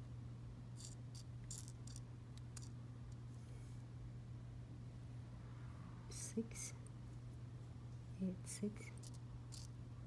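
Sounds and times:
steady low hum: 0.0 - 10.0
glass rhinestones clicking: 0.8 - 2.0, 9.0 - 9.7.

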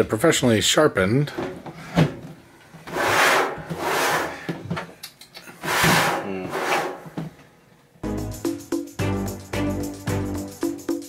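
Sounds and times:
knife sawing through plastic: 2.9 - 4.5, 5.6 - 7.0.

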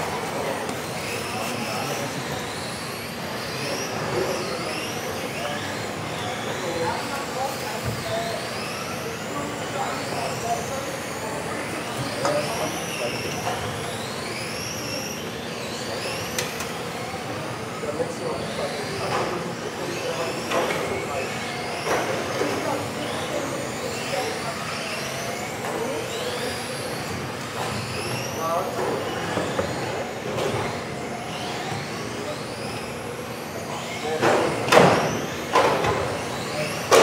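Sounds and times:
electric toy car motors whining: 0.0 - 37.0.

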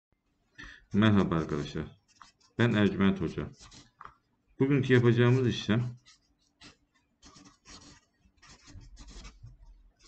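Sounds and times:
marker pen scratching on paper: 1.0 - 10.0.

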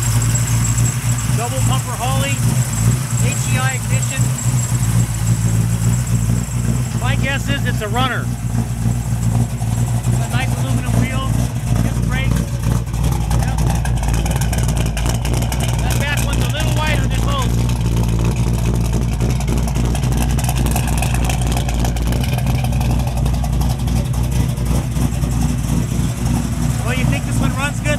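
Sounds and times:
car engine idling: 0.0 - 27.9.

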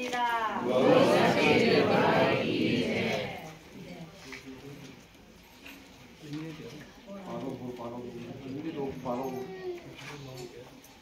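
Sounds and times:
crowd of people talking: 0.0 - 11.0.

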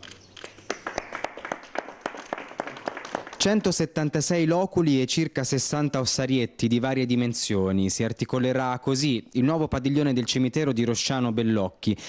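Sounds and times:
people clapping: 0.0 - 3.8.

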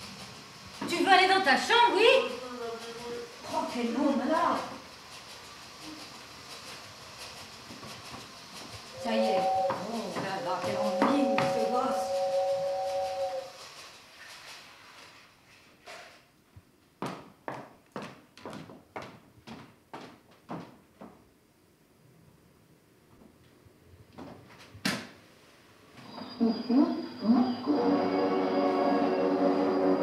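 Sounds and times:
steady hiss: 0.0 - 16.9, 25.0 - 30.0
footsteps on hard floor: 7.7 - 11.8, 17.0 - 21.2
toy train two-note whistle: 9.0 - 13.6, 26.3 - 30.0.

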